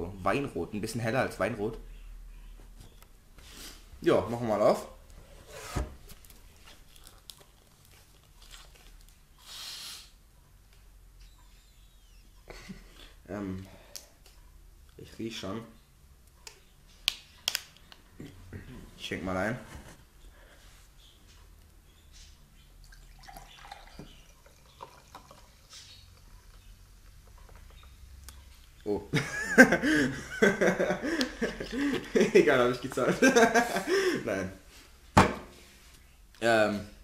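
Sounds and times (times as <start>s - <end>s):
liquid pouring into glass: 22.8s - 25.7s.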